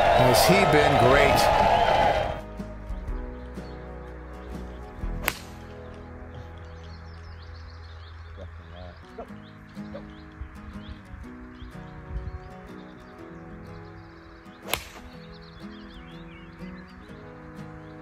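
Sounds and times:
background music: 0.0s - 18.0s
golf club striking ball: 5.2s - 5.7s, 14.7s - 15.2s.

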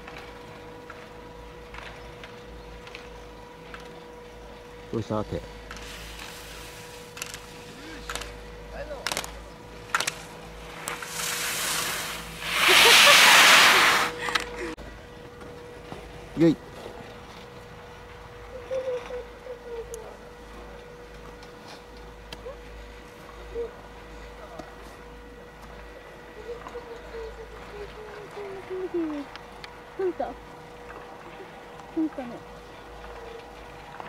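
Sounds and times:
skis hissing across snow: 5.8s - 7.9s, 10.7s - 14.3s.

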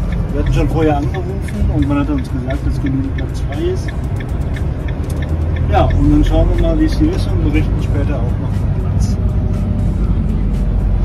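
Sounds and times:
van engine and road drone: 0.0s - 11.0s.

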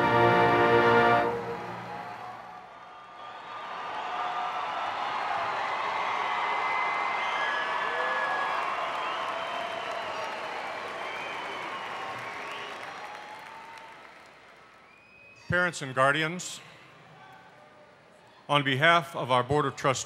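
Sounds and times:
audience applauding: 1.2s - 15.3s
scattered cheers: 1.8s - 15.6s.

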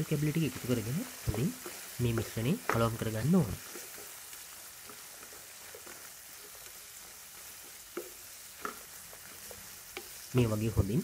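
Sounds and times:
vegetables sizzling in a wok: 0.0s - 11.0s
wooden spatula scraping: 0.5s - 10.4s.

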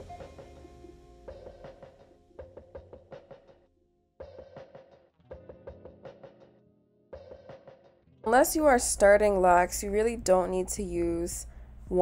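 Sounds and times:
music with quick percussive beat: 0.0s - 3.6s, 4.2s - 6.6s, 7.2s - 8.0s.

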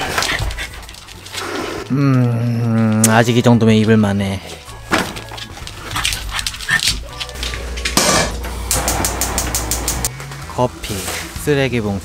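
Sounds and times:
dogs vocalizing: 5.5s - 7.2s.

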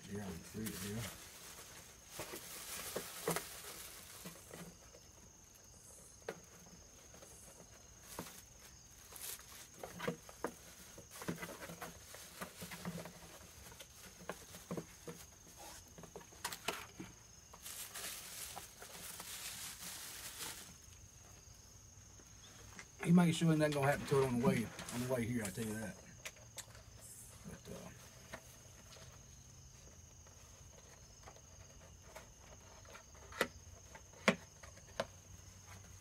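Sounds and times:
plastic bag rustling: 0.0s - 5.4s, 7.0s - 21.6s, 23.4s - 25.9s
high insect tone: 0.0s - 36.0s.

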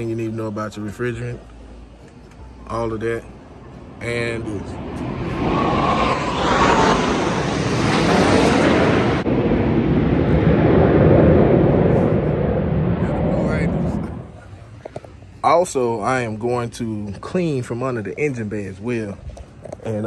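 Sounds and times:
jet aircraft roar: 0.0s - 16.5s.

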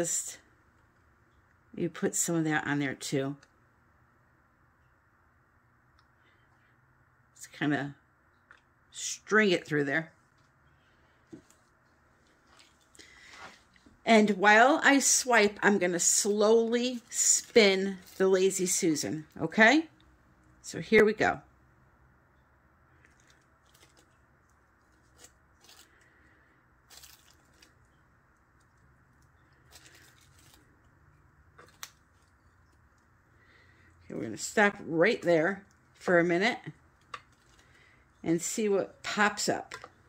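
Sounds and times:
soft handling noises: 10.1s - 14.0s, 23.0s - 36.0s, 36.6s - 38.2s.

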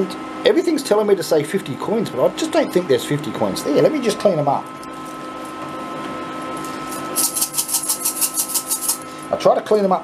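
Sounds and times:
coin pusher machine hum: 0.0s - 9.5s
coins clicking together: 7.2s - 9.0s.

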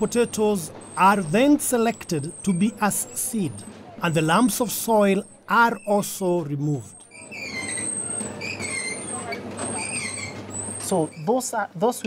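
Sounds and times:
high metallic squeals: 0.0s - 3.6s, 7.0s - 11.5s.

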